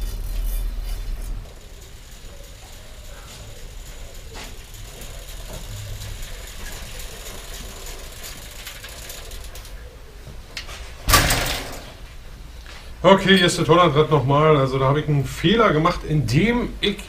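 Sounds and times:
bicycle rattles and clicks: 0.0s - 10.0s.

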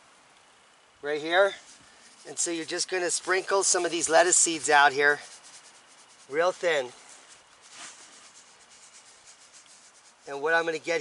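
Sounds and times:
seeds rustling on soil: 1.0s - 11.0s.

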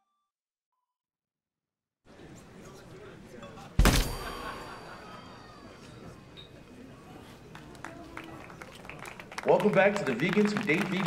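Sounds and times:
ringing metallic clang: 3.8s - 5.3s.

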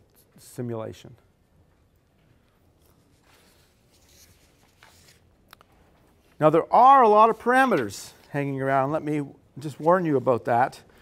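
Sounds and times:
paper sheets rustling: 2.8s - 8.4s, 9.6s - 10.6s.

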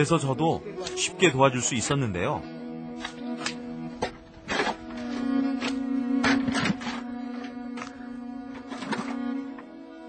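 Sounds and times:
low background music note: 0.0s - 10.0s
shovel scraping stony soil: 4.4s - 7.1s.

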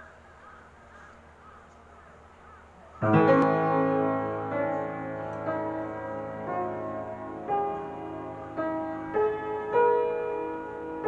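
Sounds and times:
bird calls: 0.0s - 3.5s.

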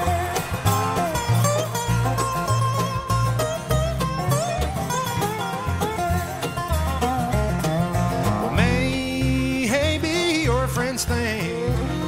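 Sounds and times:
bluegrass band playing: 0.0s - 12.0s
sliding resonator guitar notes: 0.0s - 12.0s
steady bass notes: 0.0s - 12.0s.

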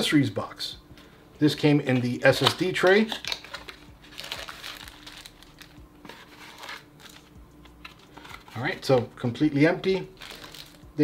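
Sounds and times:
plastic bags crinkling: 2.3s - 9.0s, 10.1s - 10.8s.

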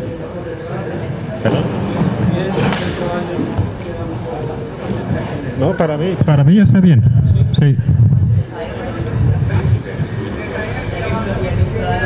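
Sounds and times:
background talk in large hall: 0.0s - 12.0s.

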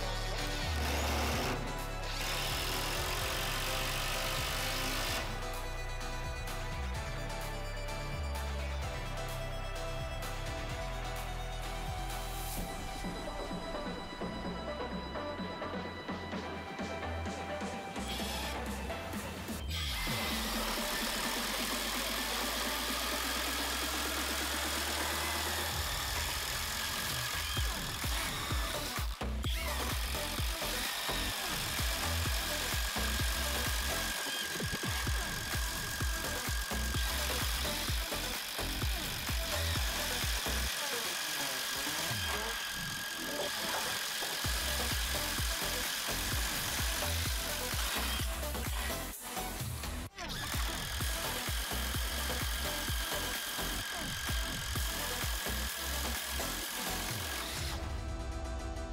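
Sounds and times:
background music: 0.0s - 58.9s.

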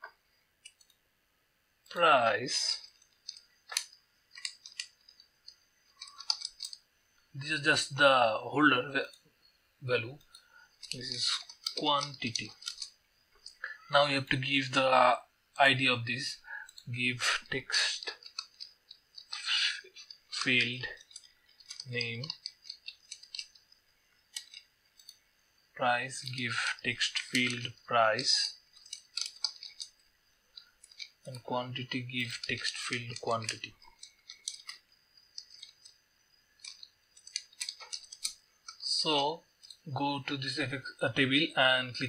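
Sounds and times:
computer mouse clicks: 2.9s - 6.8s, 24.3s - 25.2s, 36.6s - 38.8s
computer keyboard typing: 3.2s - 5.0s, 6.0s - 6.8s, 10.3s - 14.0s, 18.0s - 23.6s, 24.3s - 25.2s, 26.2s - 29.9s, 32.2s - 36.0s, 36.6s - 38.8s.

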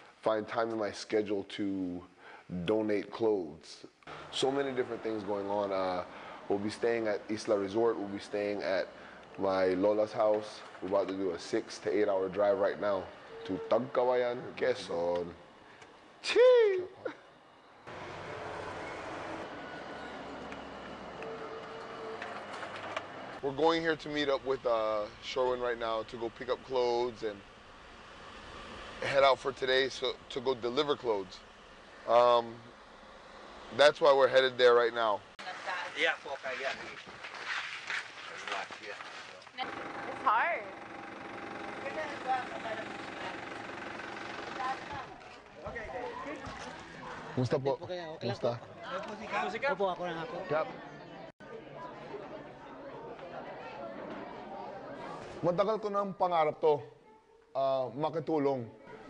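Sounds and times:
car road and engine noise: 4.1s - 16.2s, 17.3s - 35.4s, 39.4s - 47.4s
steady motor hum: 39.6s - 45.5s.

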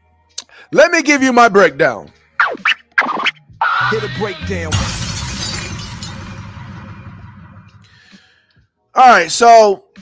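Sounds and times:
record scratching: 2.4s - 4.7s
hip-hop stinger music: 2.4s - 7.9s
glass shattering crash: 3.9s - 8.0s.

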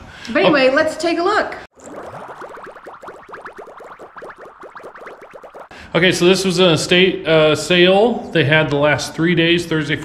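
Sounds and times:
rapid synthesized pitch glides: 1.8s - 5.7s.

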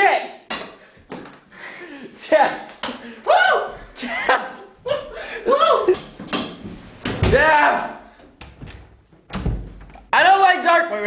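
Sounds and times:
laughter: 4.0s - 6.0s.

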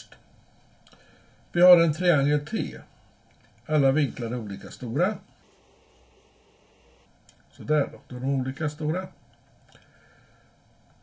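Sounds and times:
low room hiss: 0.0s - 11.0s.

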